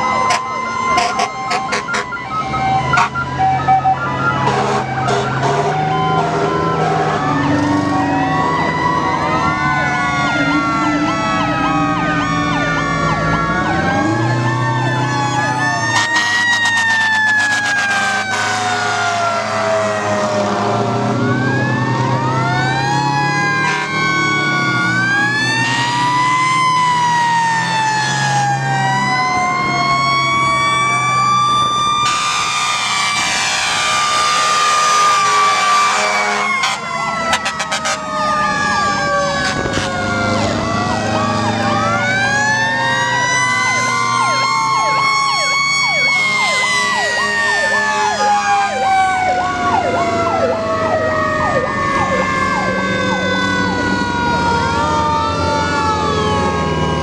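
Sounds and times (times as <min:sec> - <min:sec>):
fast warbling siren: 0:00.0 - 0:57.0
fire truck sirens wailing: 0:00.0 - 0:57.0
loud horn blast: 0:00.2 - 0:02.2, 0:02.8 - 0:03.4, 0:04.3 - 0:07.4, 0:15.9 - 0:20.9, 0:23.6 - 0:24.2, 0:32.0 - 0:38.2, 0:39.2 - 0:40.5.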